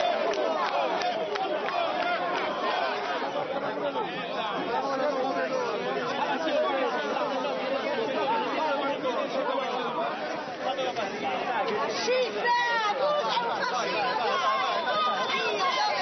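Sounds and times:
crowd talking and shouting: 0.0s - 16.0s.

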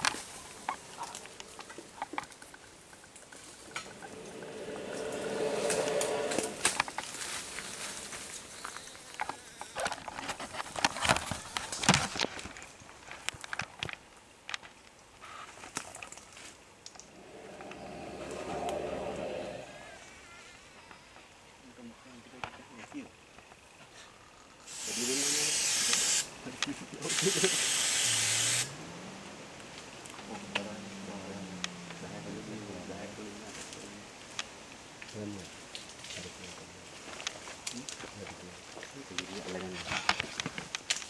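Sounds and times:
rustling of leaves and twigs: 0.0s - 20.9s, 29.2s - 41.0s
aerosol spray hissing: 24.7s - 26.3s, 27.1s - 28.7s
sharp clicks and crackles: 37.2s - 41.0s.

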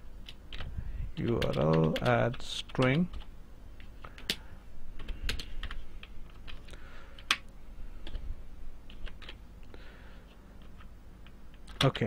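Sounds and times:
typing on computer keyboard: 0.2s - 3.3s, 5.0s - 6.6s, 8.9s - 9.4s, 10.6s - 12.0s.

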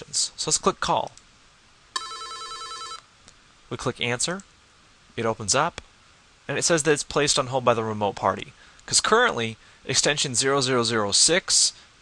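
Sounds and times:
electronic ringtone: 2.0s - 3.0s.

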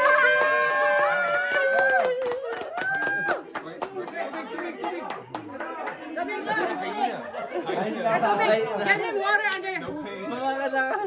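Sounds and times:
group chatter: 2.4s - 11.0s.

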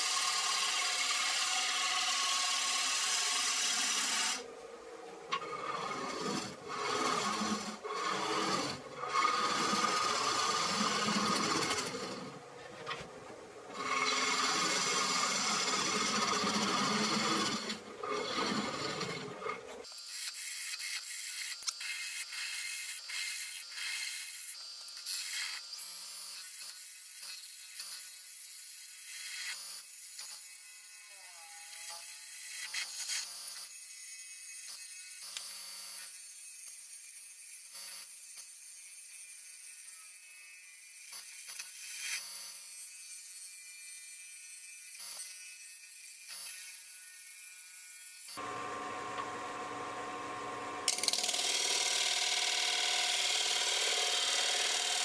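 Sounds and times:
gouge scraping wood on lathe: 0.1s - 4.4s, 5.3s - 13.0s, 13.7s - 19.8s.

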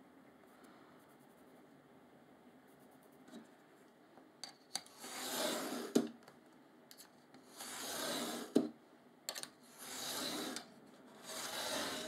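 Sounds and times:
utility knife scraping through board: 4.9s - 6.0s, 7.5s - 8.6s, 9.7s - 12.0s.

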